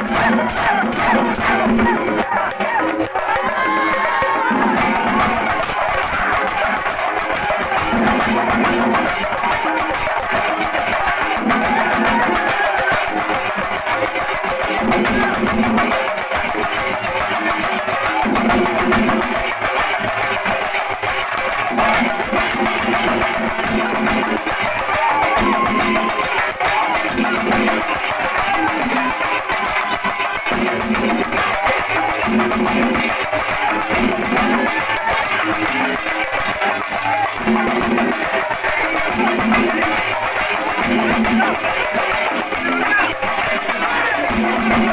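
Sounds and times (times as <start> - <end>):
drums beaten with sticks: 0.0 - 44.9.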